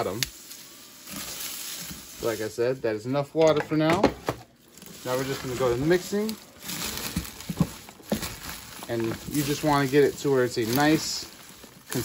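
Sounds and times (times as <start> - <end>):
rustling of leaves and moss: 0.0 - 2.8, 4.5 - 12.0.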